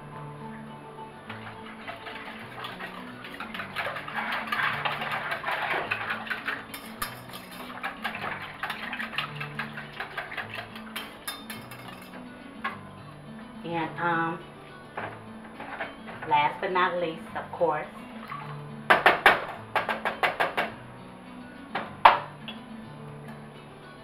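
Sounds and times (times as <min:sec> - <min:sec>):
background music low notes: 0:00.0 - 0:24.0
whisk beating in a pot: 0:01.3 - 0:12.3.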